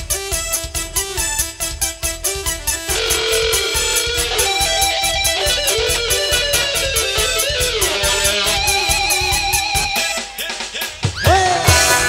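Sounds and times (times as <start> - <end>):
live band playing dangdut: 0.0 - 12.0.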